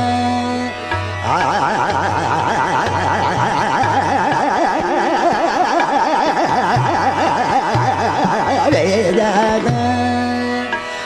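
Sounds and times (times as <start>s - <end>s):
man singing fast vocal runs: 0.0s - 10.9s
harmonium: 0.0s - 11.0s
tabla: 0.0s - 11.0s.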